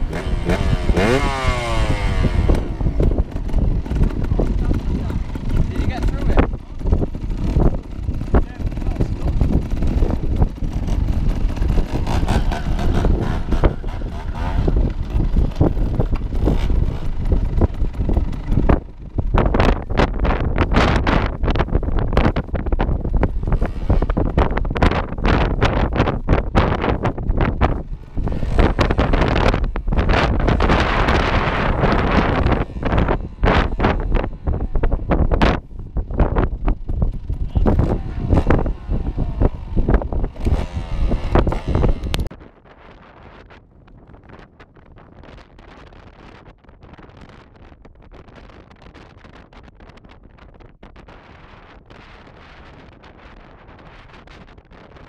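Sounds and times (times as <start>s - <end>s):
motorcycle engines running: 0.0s - 55.0s
wind buffeting microphone: 0.0s - 55.0s.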